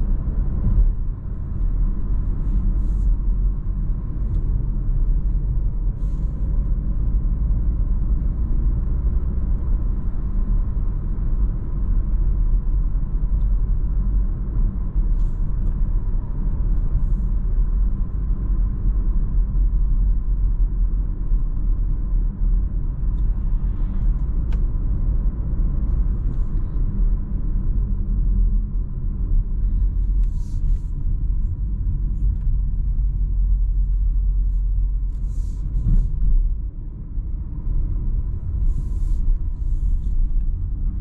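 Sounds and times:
car interior road rumble: 0.0 - 41.0
faint steady whine: 0.0 - 41.0.

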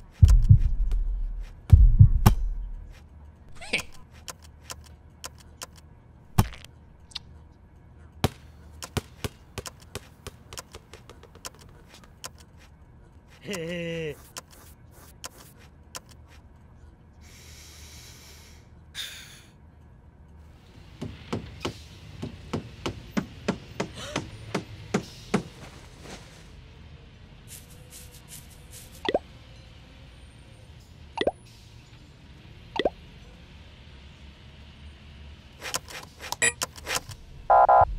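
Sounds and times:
low steady hum: 0.0 - 4.2
heavy thump: 0.2 - 2.7.

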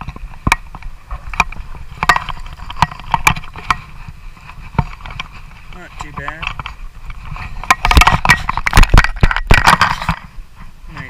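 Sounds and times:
sharp knocks and clicks: 0.0 - 4.0, 4.6 - 10.3.

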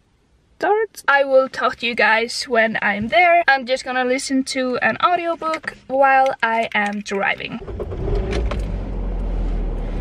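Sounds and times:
car engine rumbling: 6.8 - 10.0.

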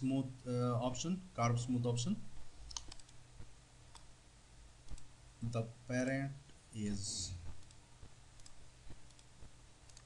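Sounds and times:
low steady background hum: 0.0 - 10.0
faint computer mouse clicks: 2.7 - 3.2, 4.9 - 5.1, 8.4 - 9.3.

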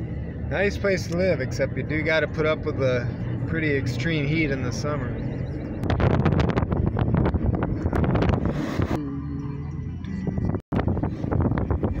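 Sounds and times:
car engine and road noise: 0.0 - 12.0
wind buffeting microphone: 5.2 - 9.0, 10.2 - 12.0.

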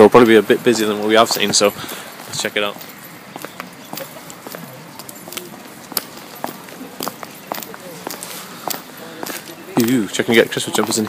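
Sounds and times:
footsteps on pavement: 0.0 - 11.0.

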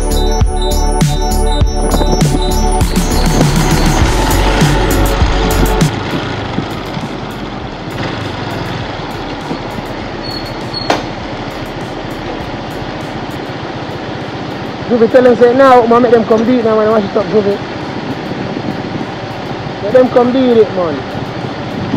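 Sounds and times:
music with heavy bass: 0.0 - 21.9
road and wind noise: 0.0 - 21.9
motorcycle engine idling: 1.8 - 21.9.

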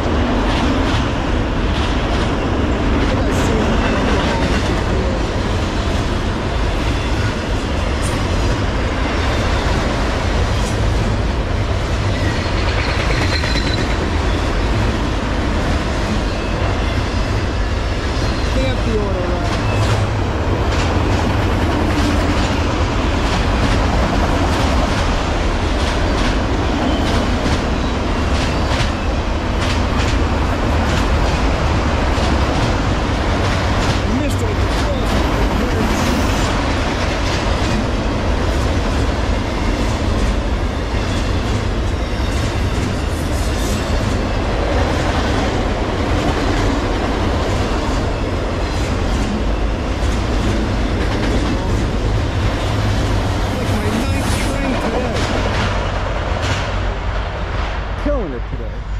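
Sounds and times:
clicks and clanks of freight cars: 0.0 - 58.9
steel wheels rumbling on rail: 0.0 - 58.9.

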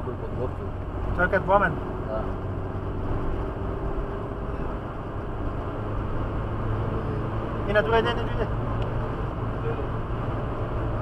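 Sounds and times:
low engine hum: 0.0 - 11.0
road roar inside car: 0.0 - 11.0.

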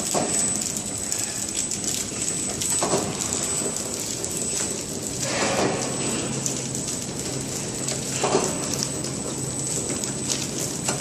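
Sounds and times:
packing machine clatter: 7.2 - 11.0.

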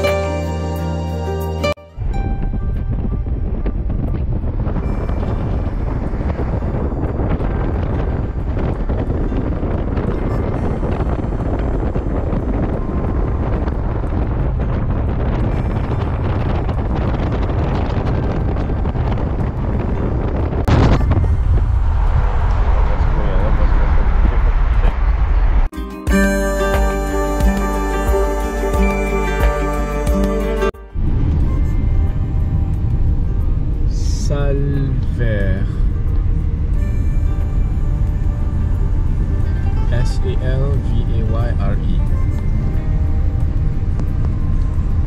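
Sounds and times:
car road noise rumbling: 1.9 - 25.7, 30.0 - 45.0
wind buffeting microphone: 2.0 - 25.7, 31.0 - 45.0.

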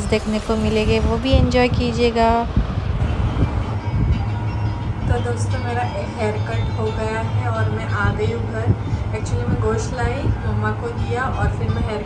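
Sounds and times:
lift running rumble and hum: 0.0 - 12.0.

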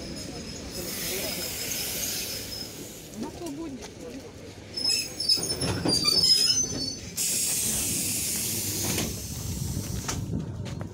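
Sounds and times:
compressed air hissing: 0.8 - 3.0, 7.2 - 10.0
brief high squeal: 4.8 - 7.1.

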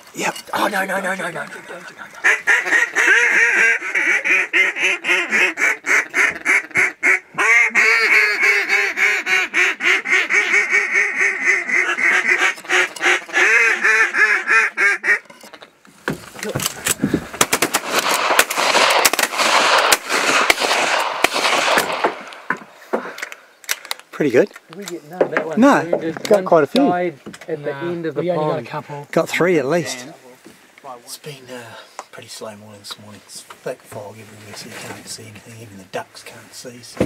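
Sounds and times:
rapid duck quacks: 2.2 - 15.2
rustling and scraping with clicks: 15.2 - 17.2, 32.9 - 35.4.

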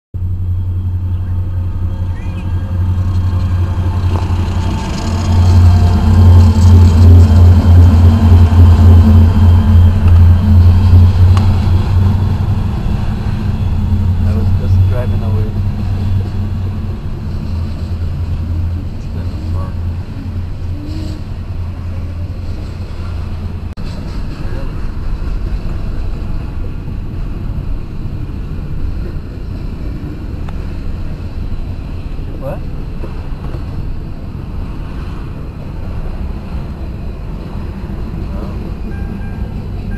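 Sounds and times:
diesel locomotives droning: 0.2 - 39.9
freight cars rumbling by: 0.2 - 39.9.

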